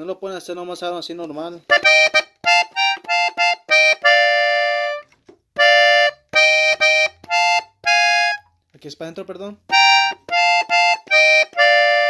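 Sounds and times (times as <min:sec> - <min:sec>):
button accordion chords: 0:01.7 - 0:08.5, 0:09.7 - 0:12.0.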